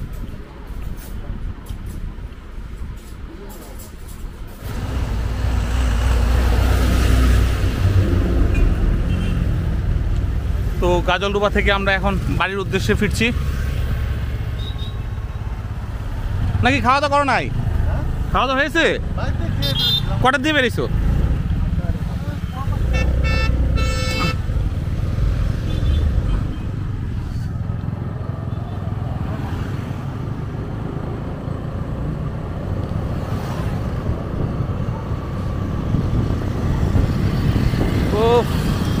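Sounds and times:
motorcycle engine and road rumble: 0.0s - 39.0s
vehicle horn toots: 8.5s - 9.5s, 19.6s - 20.2s, 22.8s - 24.5s
wind on microphone: 32.4s - 39.0s.

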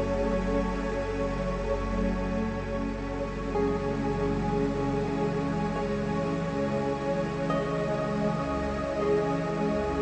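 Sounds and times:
slow gentle new-age music: 0.0s - 10.0s.

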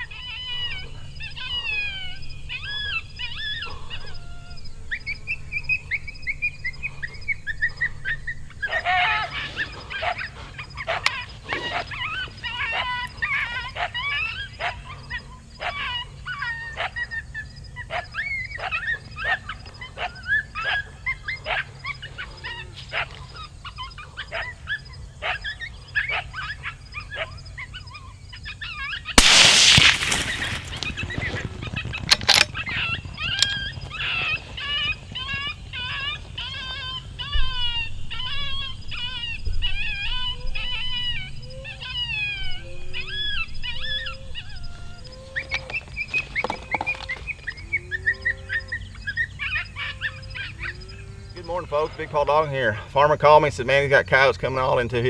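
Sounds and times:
coyote barking and yipping: 0.0s - 55.0s
gunshot: 29.2s - 30.9s.

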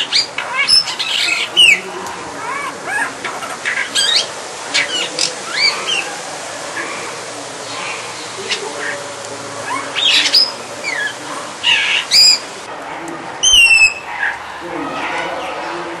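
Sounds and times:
bird harsh squawks: 0.0s - 1.8s, 2.4s - 6.2s, 9.6s - 12.6s, 13.4s - 14.4s
bird whistled notes: 13.4s - 14.1s.

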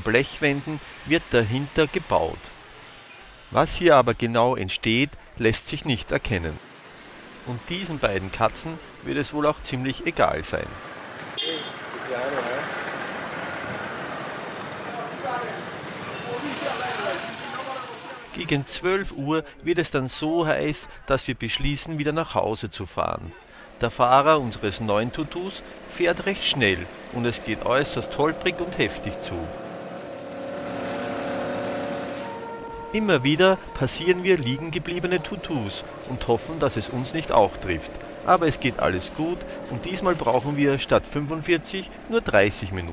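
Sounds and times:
street traffic noise: 0.0s - 19.7s, 23.3s - 42.9s
road and wind rush: 10.8s - 16.4s
motorcycle engine running: 23.4s - 32.6s, 34.8s - 42.9s.

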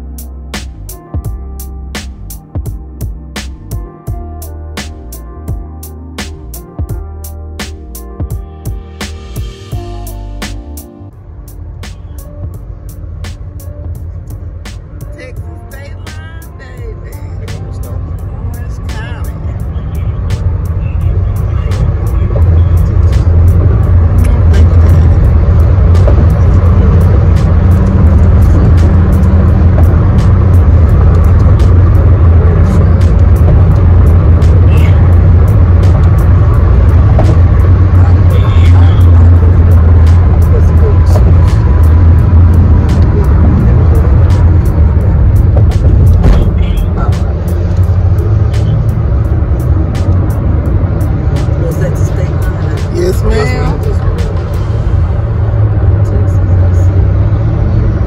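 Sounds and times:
car road noise rumble: 0.0s - 58.0s
music playing: 0.0s - 58.0s.

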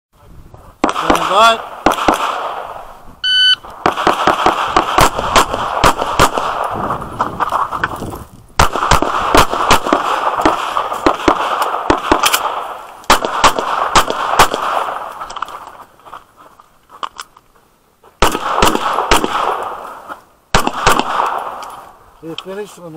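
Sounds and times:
pistol shots: 0.8s - 2.9s, 3.8s - 6.8s, 8.6s - 15.4s, 18.2s - 19.8s, 20.5s - 21.8s
shot timer beep: 3.2s - 3.6s.

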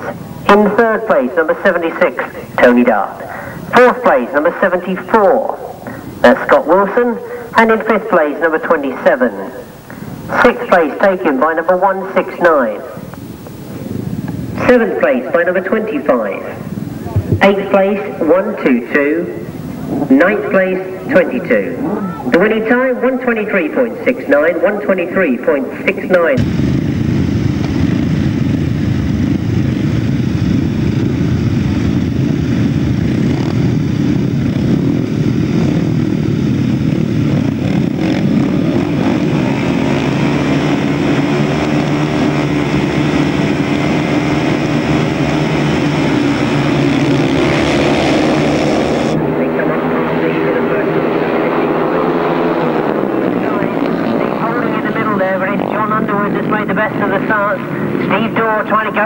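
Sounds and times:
motorcycles revving: 0.0s - 59.0s.

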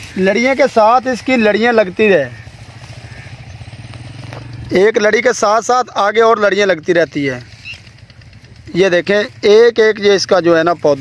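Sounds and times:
person speaking: 0.0s - 2.6s, 4.6s - 7.8s, 8.5s - 11.0s
engine humming: 0.0s - 11.0s.

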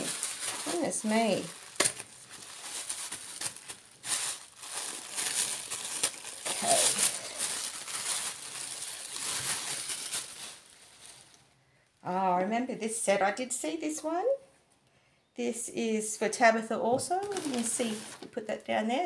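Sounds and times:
tissue paper crinkling: 0.0s - 11.5s, 17.2s - 18.3s.

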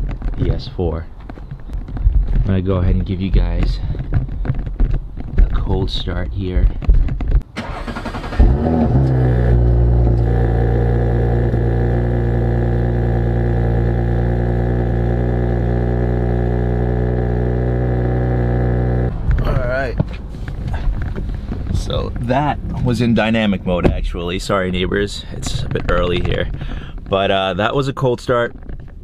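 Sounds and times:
car engine cold start and idle: 7.5s - 23.7s.

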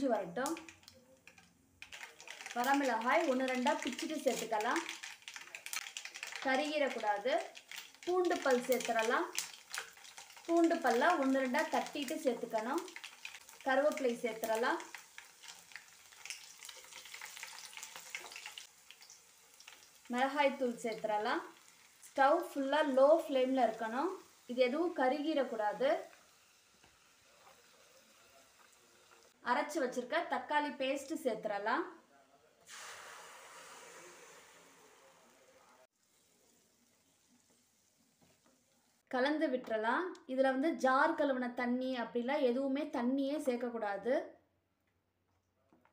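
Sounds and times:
leaves sizzling in hot oil: 0.0s - 29.4s, 32.7s - 39.0s
faint hiss: 17.5s - 29.4s, 32.2s - 39.1s.

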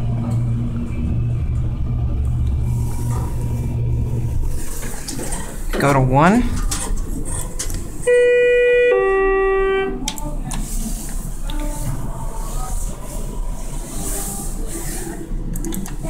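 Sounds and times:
elevator chime two notes: 8.1s - 10.0s.

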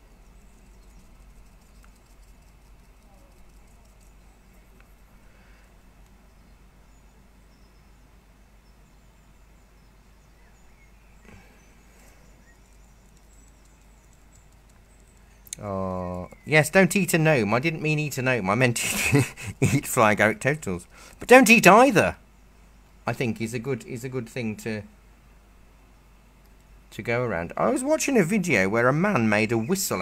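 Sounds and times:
paintbrush scratching on paper: 1.0s - 4.3s.

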